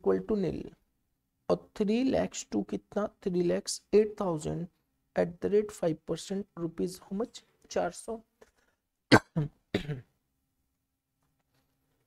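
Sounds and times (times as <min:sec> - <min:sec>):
man coughing: 0:09.1 - 0:10.1.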